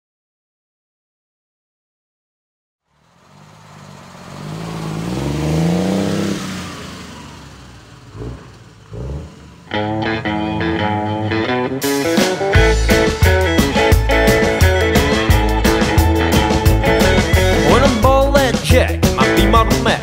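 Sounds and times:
vehicle engine revving: 0:02.9 - 0:20.0
drums: 0:09.7 - 0:20.0
rockabilly band guitar: 0:09.7 - 0:20.0.

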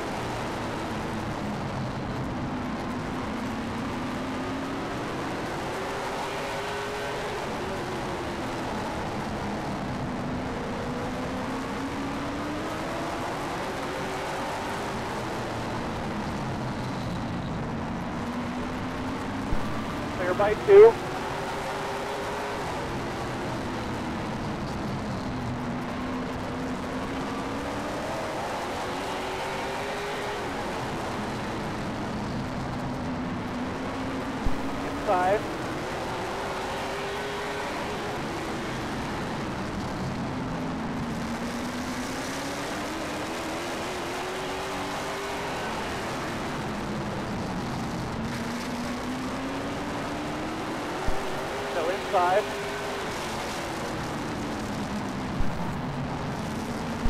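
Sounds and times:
race car engine from cockpit: 0:00.0 - 0:57.0
two-way radio chatter: 0:20.1 - 0:21.0, 0:34.7 - 0:35.5, 0:51.7 - 0:52.6.

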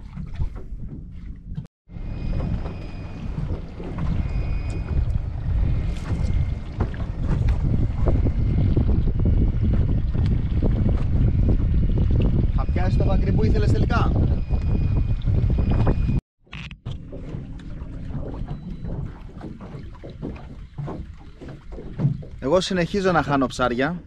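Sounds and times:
wind buffeting microphone: 0:00.0 - 0:16.2.

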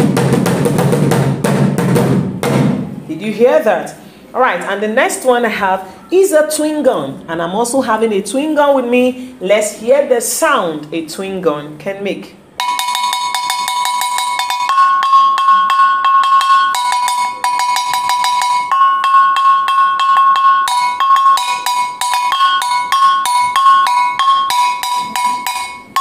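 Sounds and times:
metal gong clanging rapidly: 0:12.6 - 0:26.0.

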